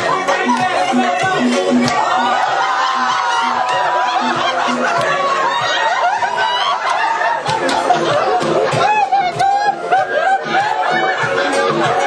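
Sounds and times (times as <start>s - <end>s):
music with steady beat: 0.0s - 12.0s
people laughing and giggling: 0.0s - 12.0s.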